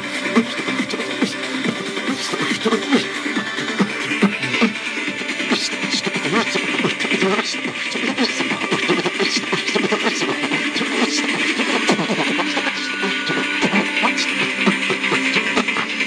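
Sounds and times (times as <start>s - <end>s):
person beatboxing: 0.0s - 16.0s
pop music from a radio: 0.0s - 16.0s.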